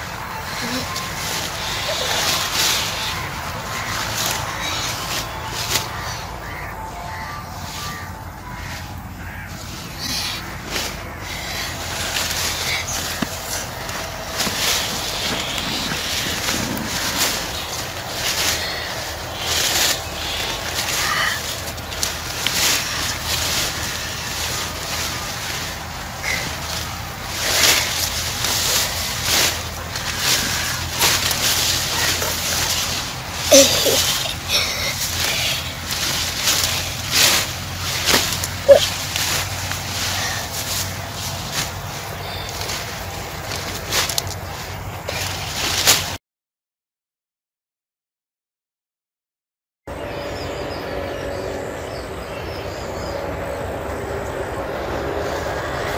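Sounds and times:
steady low hum: 0:00.0 - 0:45.2
vines rustling and crackling: 0:00.0 - 0:46.2.

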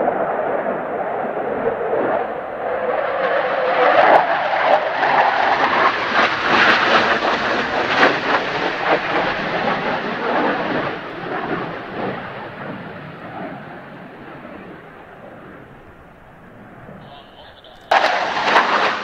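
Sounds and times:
jet roar with crackles: 0:00.0 - 0:19.0.

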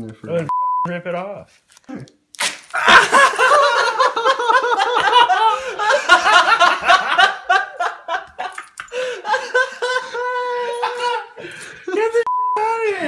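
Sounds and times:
censor bleep: 0:00.5 - 0:00.9, 0:12.3 - 0:12.7
people laughing: 0:02.8 - 0:12.2.

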